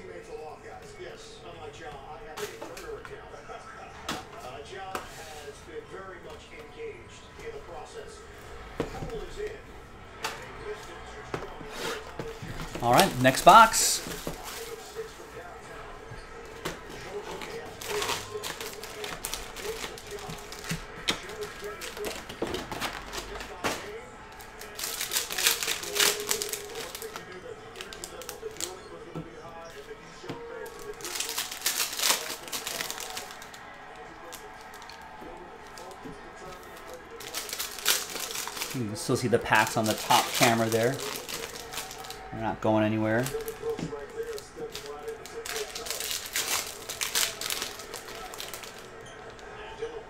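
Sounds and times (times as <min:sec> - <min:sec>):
foil packs rustling: 0:11.3 - 0:15.4, 0:16.5 - 0:28.8, 0:30.6 - 0:48.9
plastic shrink-wrap crinkling: 0:12.7 - 0:15.0, 0:17.1 - 0:28.8, 0:30.6 - 0:49.3.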